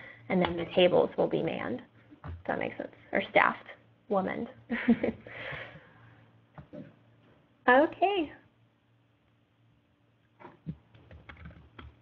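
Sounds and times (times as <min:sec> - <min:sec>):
typing on computer keyboard: 0:10.9 - 0:12.0.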